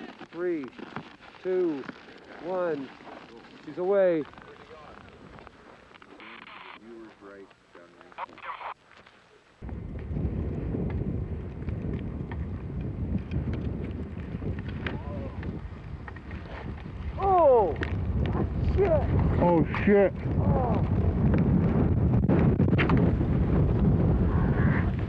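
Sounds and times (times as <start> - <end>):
wind buffeting microphone: 9.6 - 25.0.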